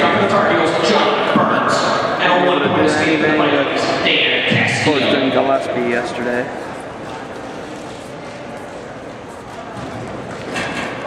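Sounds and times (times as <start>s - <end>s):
gymnasium background noise: 0.0s - 11.0s.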